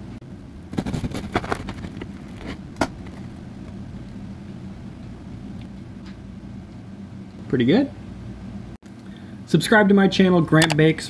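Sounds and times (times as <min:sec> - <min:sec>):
steady low hum: 0:00.0 - 0:11.0
bread crust crackling and snapping: 0:00.6 - 0:04.2.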